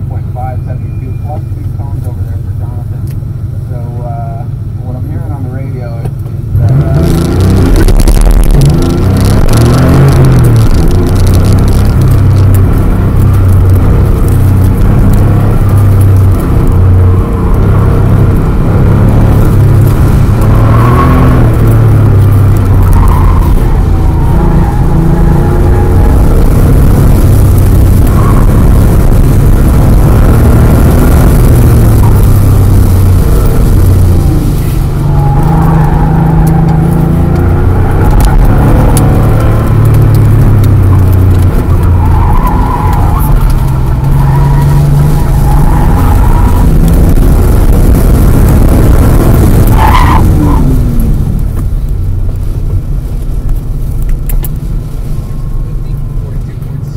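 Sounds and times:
car engine revving hard: 0:06.5 - 0:51.7.

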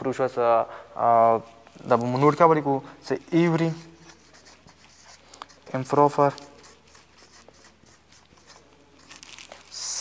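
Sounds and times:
marker writing on whiteboard: 0:03.1 - 0:10.0.

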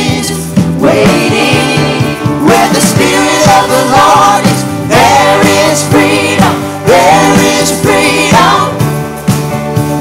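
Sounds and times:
vocal team singing: 0:00.0 - 0:08.8
steady drum beat: 0:00.0 - 0:10.0
worship band playing: 0:00.0 - 0:10.0.

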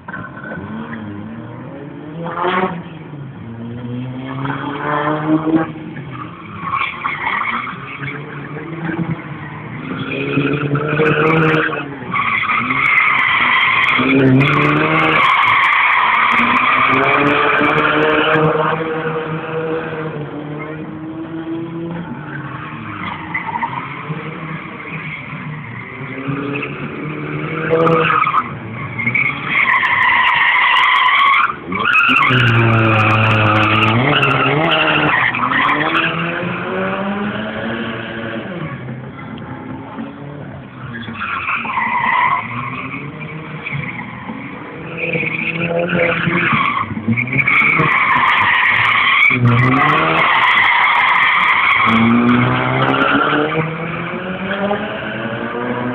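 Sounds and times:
car engine revving: 0:00.0 - 0:55.9.

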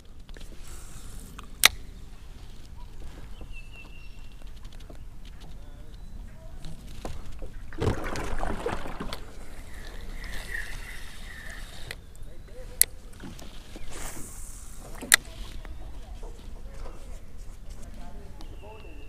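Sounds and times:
faint reel whirring: 0:09.2 - 0:15.6.

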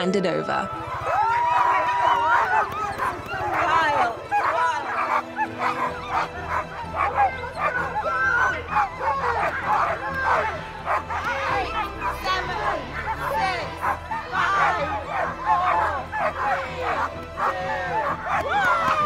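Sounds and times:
sled dogs yelping and barking: 0:00.7 - 0:19.0.

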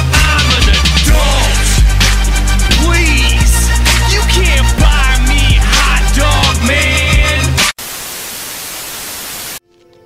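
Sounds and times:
television static hiss: 0:07.8 - 0:09.6.

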